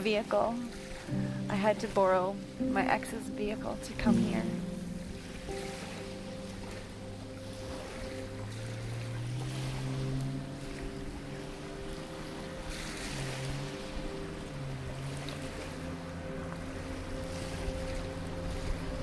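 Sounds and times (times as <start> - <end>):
soft background music: 0.0 - 19.0
waves: 0.0 - 19.0
wind: 0.0 - 19.0.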